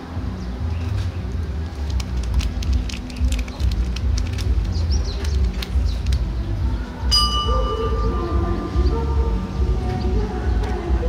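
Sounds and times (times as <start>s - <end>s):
bell ringing: 7.1s - 9.4s.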